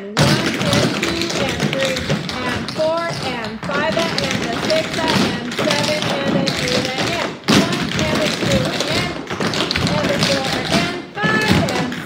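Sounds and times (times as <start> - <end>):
dancers' feet on wooden floor: 0.1 - 12.0.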